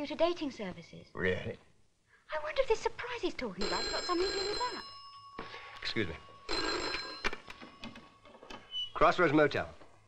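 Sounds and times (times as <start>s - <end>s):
telephone bell ringing: 3.6s - 8.7s.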